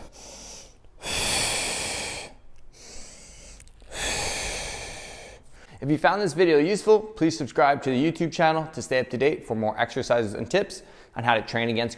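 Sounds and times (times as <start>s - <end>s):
man breathing hard: 0.0s - 5.8s, 10.8s - 11.2s.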